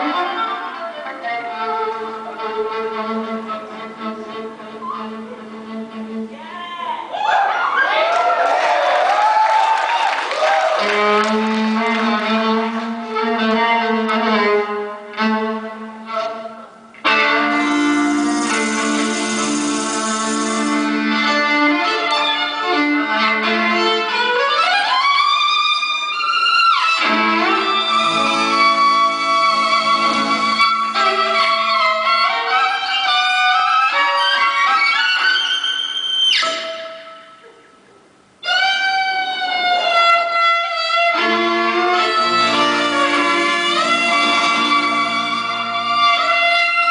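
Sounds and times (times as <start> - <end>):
folk-rock band playing: 14.1 - 24.6, 25.3 - 35.3, 38.8 - 46.9
held fiddle note: 17.1 - 21.4, 27.0 - 34.4, 41.0 - 46.9.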